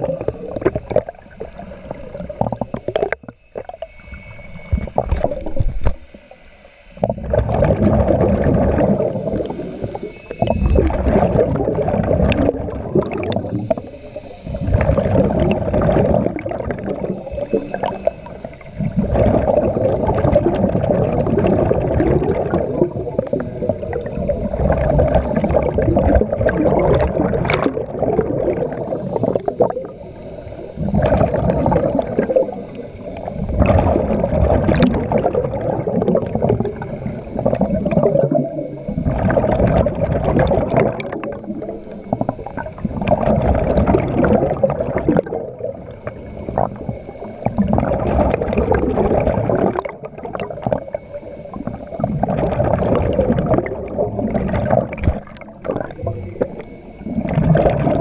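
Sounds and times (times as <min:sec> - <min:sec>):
underwater breath bubbles gurgling: 0:00.0 - 0:58.0.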